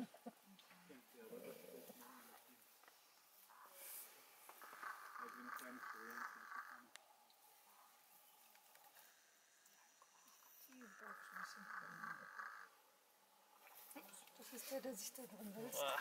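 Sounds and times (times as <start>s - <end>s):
faint buzzing: 1.6s - 15.3s.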